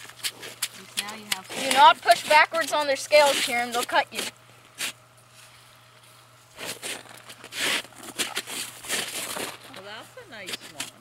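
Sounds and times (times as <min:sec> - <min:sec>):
crunching and scraping on icy snow: 0:00.1 - 0:11.0.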